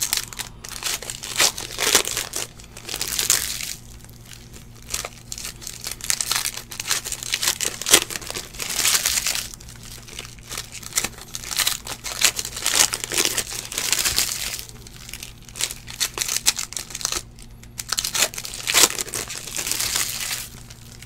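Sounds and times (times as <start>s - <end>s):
foil wrapper crinkling: 0.0s - 21.0s.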